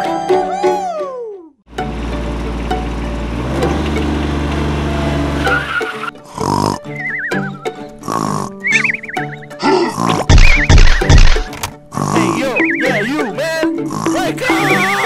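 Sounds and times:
music: 0:00.0 - 0:04.4, 0:05.1 - 0:15.0
low engine drone: 0:01.7 - 0:05.6
wavering whinny-like calls: 0:05.4 - 0:06.2, 0:06.8 - 0:07.8, 0:08.6 - 0:09.5.

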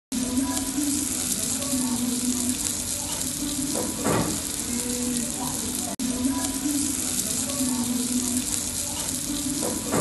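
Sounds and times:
steak sizzling on hot plate: 0:00.1 - 0:10.0.

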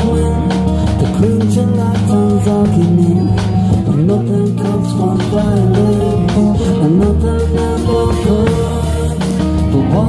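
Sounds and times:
acoustic guitar: 0:00.0 - 0:10.0
drum kit playing: 0:00.0 - 0:10.0
sliding bass line: 0:00.0 - 0:10.0.

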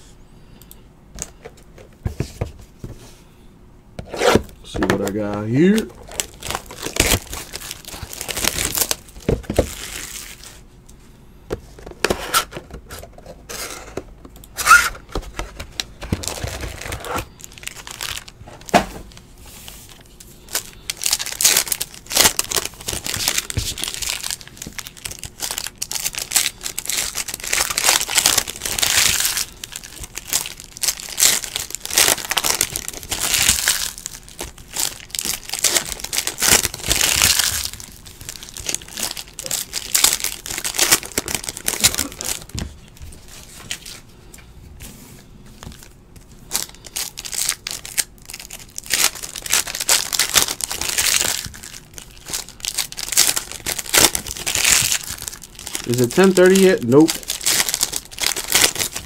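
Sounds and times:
foil wrappers crinkling and tearing: 0:04.4 - 0:10.6, 0:14.6 - 0:44.0, 0:45.6 - 0:59.0.

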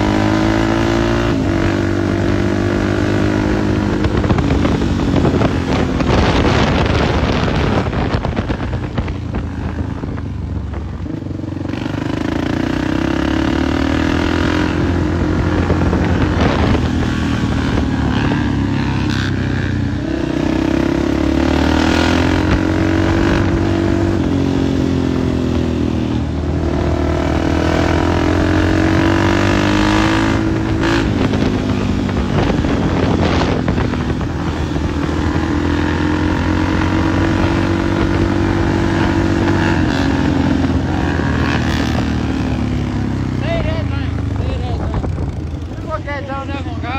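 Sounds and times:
motorcycle engines revving: 0:00.0 - 0:46.9.

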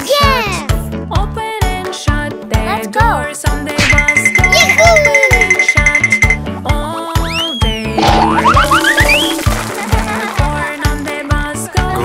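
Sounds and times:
upbeat children's music: 0:00.0 - 0:12.0
springy boings: 0:03.8 - 0:06.4.

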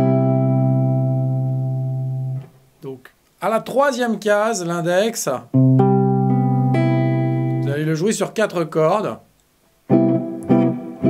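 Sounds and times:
guitar chord ringing: 0:00.0 - 0:02.5, 0:05.5 - 0:07.7, 0:09.9 - 0:11.0.

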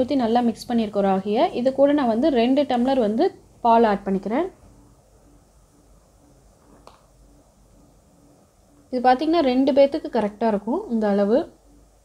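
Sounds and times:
faint pulsing low hum: 0:00.0 - 0:12.0.

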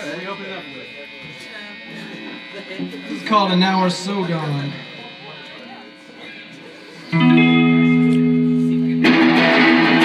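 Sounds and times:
faint voices: 0:00.0 - 0:09.7
guitar amplifier hum: 0:00.0 - 0:10.0
quiet guitar picking: 0:07.1 - 0:10.0.

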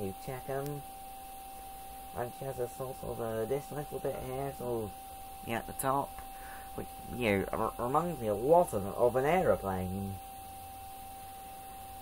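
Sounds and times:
high whine: 0:00.0 - 0:12.0
low electrical hum: 0:00.0 - 0:12.0.

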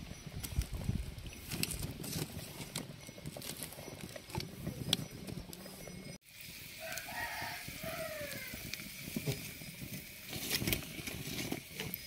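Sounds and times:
wood fire crackling: 0:00.0 - 0:12.0
rooster crowing: 0:06.8 - 0:08.7.

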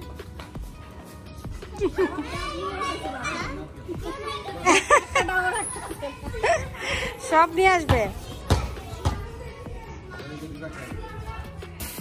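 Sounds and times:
children calling and chattering: 0:00.8 - 0:12.0
children shouting high-pitched: 0:01.9 - 0:04.9.

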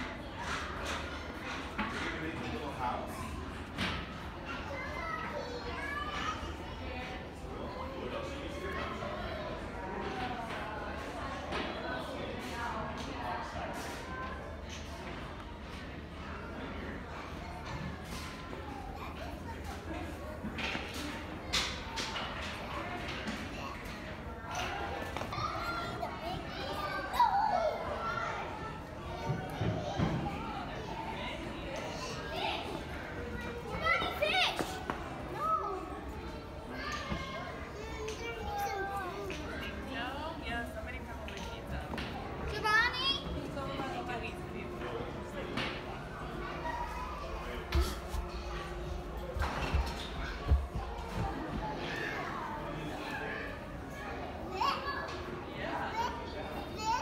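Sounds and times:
children talking and calling: 0:00.0 - 0:57.0
murmur of busy play room: 0:00.0 - 0:57.0.

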